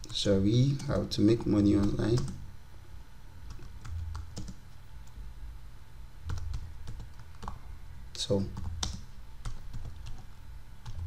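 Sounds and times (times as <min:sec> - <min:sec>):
keyboard typing: 0:01.3 - 0:02.4, 0:03.5 - 0:04.6, 0:06.3 - 0:07.6, 0:08.5 - 0:11.0.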